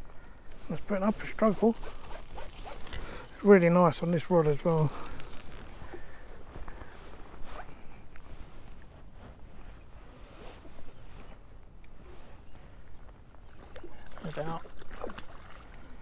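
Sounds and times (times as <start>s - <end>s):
fishing reel clicks and rustles: 0.4s - 6.2s.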